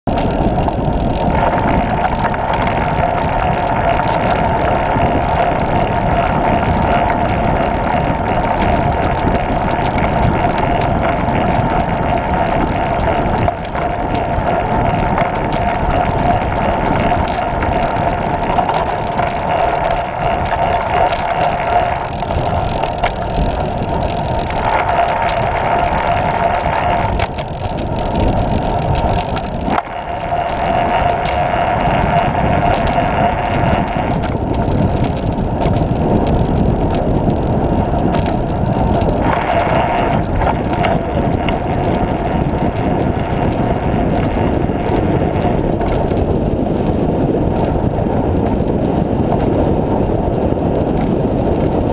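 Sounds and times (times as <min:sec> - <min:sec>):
trike wheels rolling on pavement: 0:00.0 - 0:51.9
wind noise on microphone: 0:00.0 - 0:51.9.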